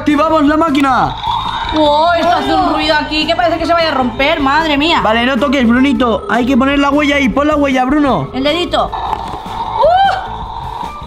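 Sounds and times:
swooping electronic tone: 1.0 - 7.2.

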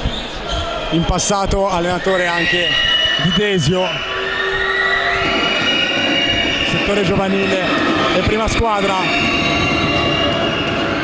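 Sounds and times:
high sustained whistling tone: 0.0 - 11.0.

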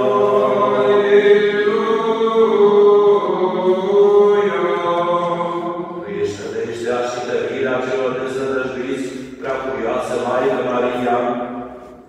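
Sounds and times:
person chanting sustained notes: 0.0 - 11.3.

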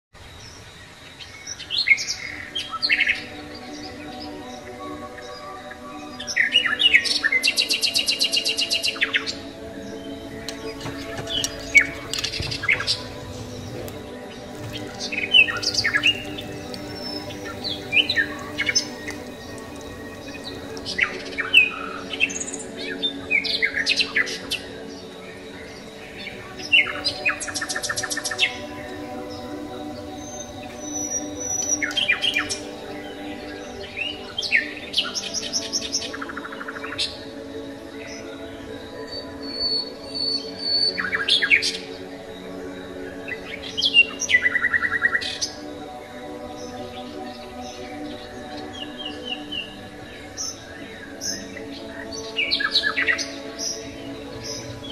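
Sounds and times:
birdsong chirps and trills: 0.2 - 54.9
sustained music chord: 9.8 - 23.3, 25.2 - 35.2, 53.3 - 54.9.

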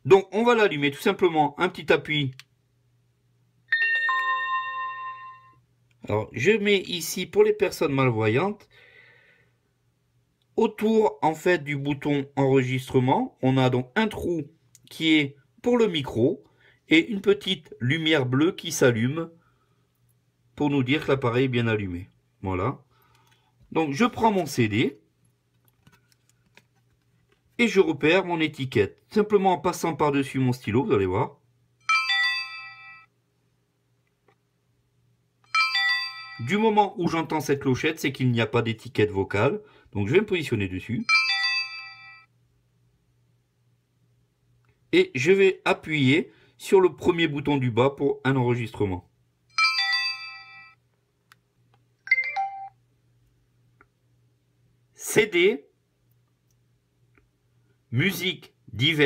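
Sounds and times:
electronic chimes from a speaker: 3.7 - 5.6, 52.1 - 52.8.

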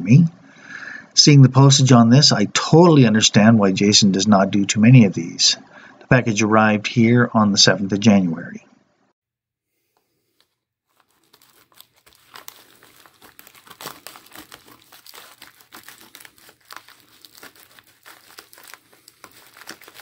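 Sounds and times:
plastic envelope crinkling: 10.3 - 20.0.

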